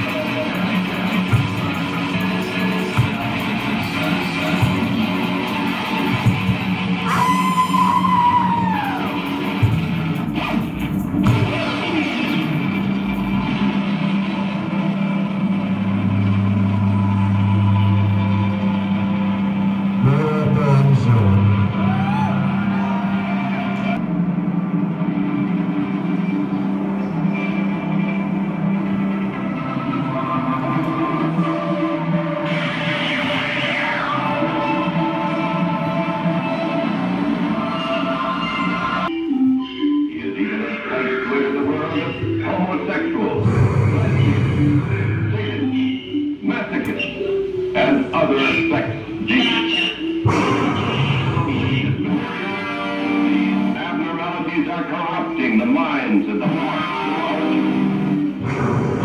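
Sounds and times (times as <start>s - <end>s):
electric guitar drone: 50.2s - 54.4s, 56.4s - 59.0s.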